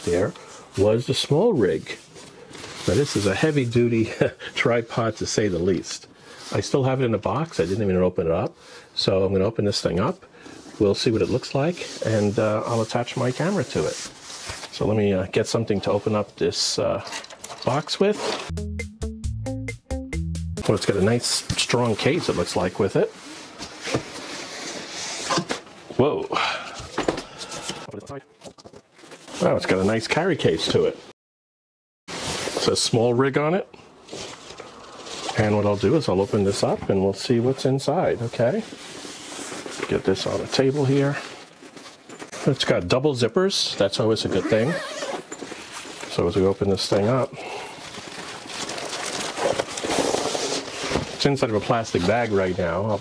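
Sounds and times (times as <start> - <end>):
fabric scraping against cardboard: 10.6 - 15.0, 20.7 - 25.7, 32.1 - 32.8, 37.5 - 42.7, 47.9 - 53.0
plastic bag crinkling: 47.1 - 50.9.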